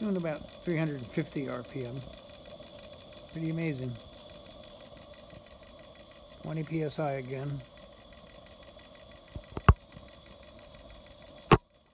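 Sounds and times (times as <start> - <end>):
steam engine running quietly: 0.0 - 11.9
sharp clicks: 9.2 - 10.3.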